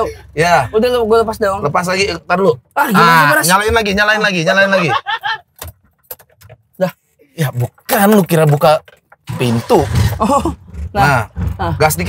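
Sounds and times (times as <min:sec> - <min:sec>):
car key jangling in ignition: 0:05.5 - 0:06.8.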